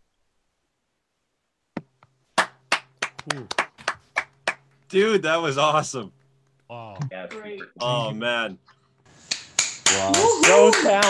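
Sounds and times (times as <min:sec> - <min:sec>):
person clapping hands: 0:02.4 - 0:04.6, 0:09.2 - 0:11.0.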